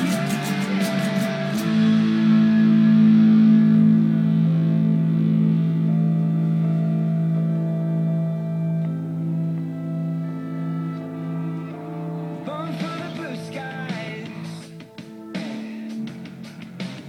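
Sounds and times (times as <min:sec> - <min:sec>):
electric guitar chords: 0:00.0 - 0:17.0.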